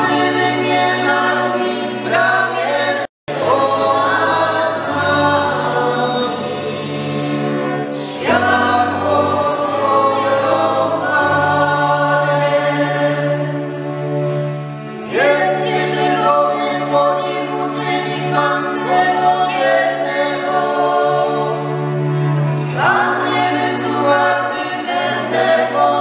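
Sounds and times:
folk string band: 0.0 - 26.0
group of voices singing: 0.0 - 26.0.

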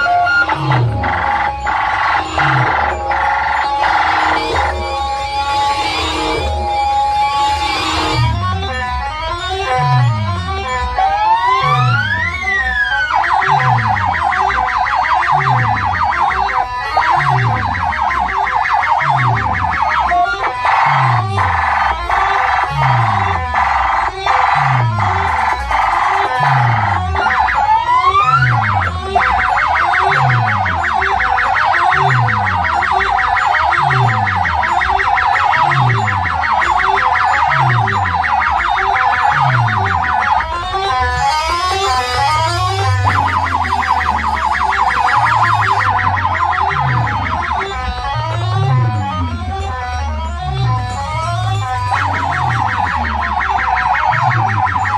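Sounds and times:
buzzing synth pattern: 0.0 - 54.9
dance music from loudspeakers: 0.0 - 54.9
siren-like synth sweeps: 0.0 - 54.9.

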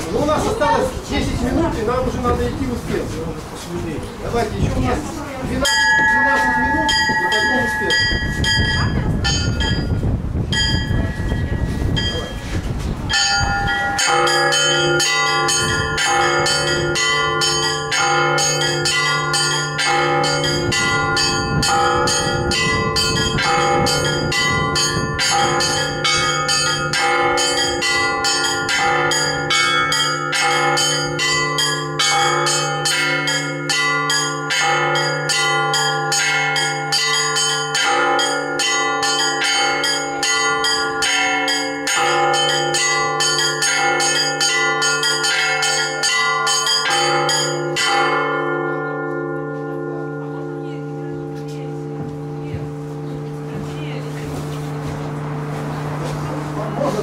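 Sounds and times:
church bells pealing: 4.4 - 57.0.

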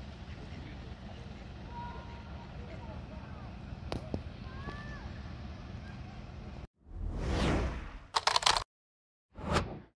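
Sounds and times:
sharp click: 8.2 - 8.7.

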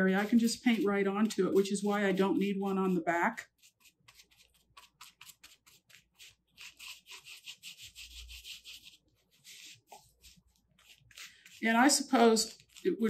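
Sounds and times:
paintbrush strokes on fabric: 0.0 - 13.0.

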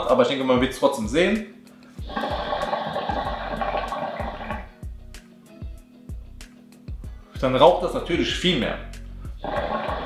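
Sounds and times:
background music with beat: 0.0 - 10.0
water pipe bubbling: 2.0 - 4.7, 9.4 - 10.0.

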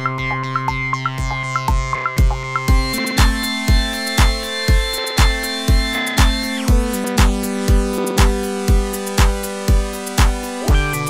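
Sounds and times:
held synthesizer chords: 0.0 - 11.0
kick drum beat: 0.0 - 11.0.

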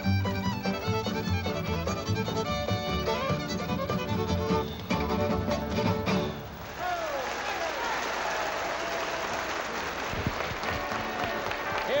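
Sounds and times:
crowd applauding: 6.5 - 12.0.

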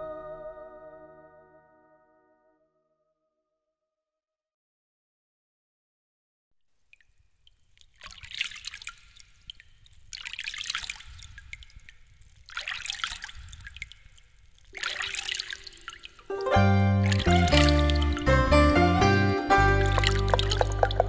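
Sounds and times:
water trickling and dripping: 6.7 - 18.6, 19.7 - 21.0.

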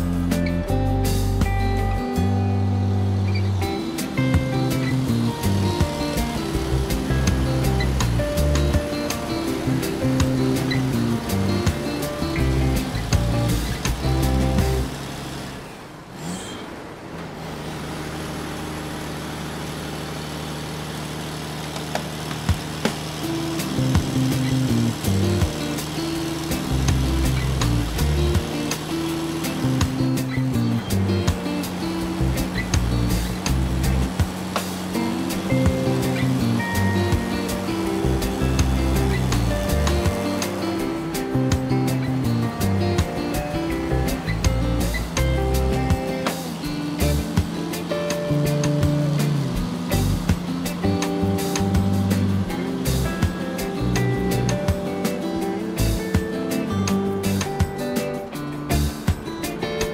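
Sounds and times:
music with a beat and melody: 0.0 - 15.0, 22.4 - 59.9.

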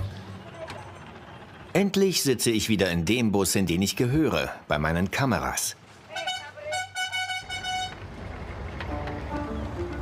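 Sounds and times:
low engine rumble: 0.0 - 10.0
vehicle horn tooting: 6.1 - 8.0.

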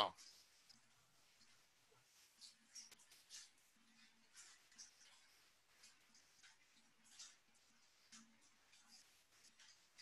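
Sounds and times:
voice: 0.0 - 0.2.

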